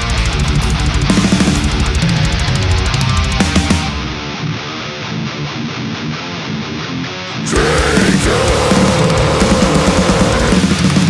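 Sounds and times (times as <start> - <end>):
electric guitar riff: 0.0 - 11.0.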